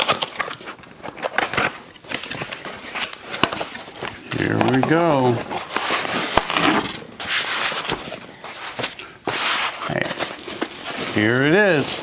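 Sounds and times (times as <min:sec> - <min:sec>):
cardboard and foam rustling: 0:00.0 - 0:12.0.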